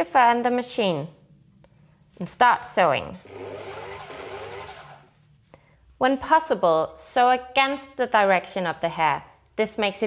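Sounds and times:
sewing machine stitching: 3.2s - 5.2s.

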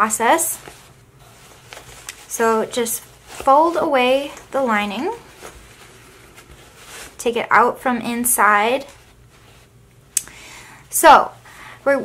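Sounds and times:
cloth rustling: 0.0s - 10.2s.

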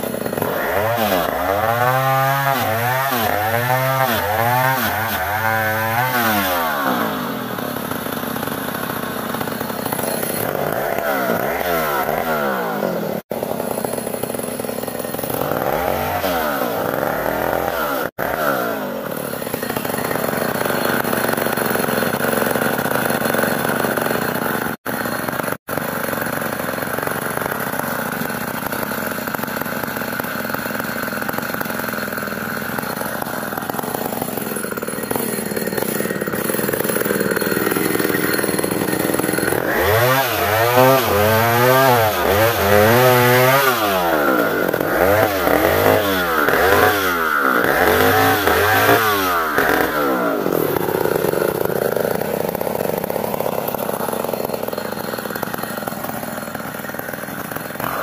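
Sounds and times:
chainsaw cutting log: 0.0s - 58.0s.

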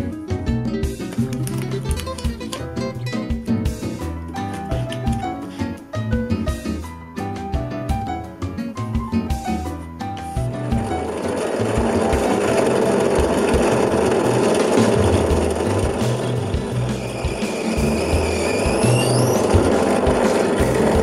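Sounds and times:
background music with beat: 0.0s - 21.0s
drill press drilling wood: 10.6s - 21.0s
drill whine: 11.1s - 21.0s.

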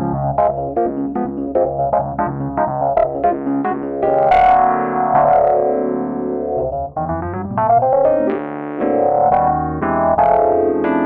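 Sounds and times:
jazz piano chords: 0.0s - 11.0s.

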